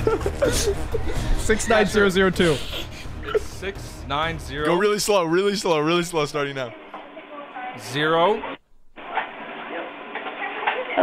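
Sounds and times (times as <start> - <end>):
faint voices over phone line: 8.4 - 11.0.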